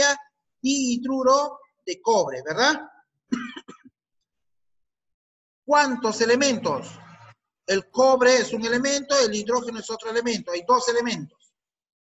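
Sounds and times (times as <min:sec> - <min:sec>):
man clearing his throat: 0:03.3 - 0:04.0.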